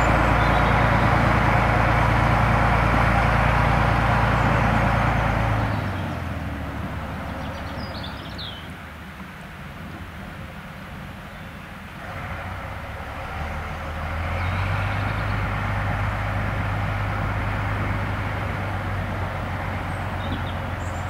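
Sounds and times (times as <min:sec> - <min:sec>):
diesel locomotive engine running: 0:00.0 - 0:21.0.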